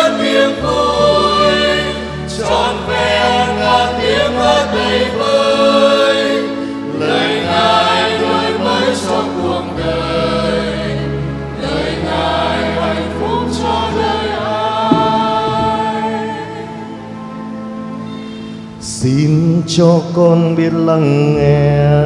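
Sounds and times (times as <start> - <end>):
choir singing a hymn: 0.0 - 19.9
accompanying bass notes: 14.5 - 17.6.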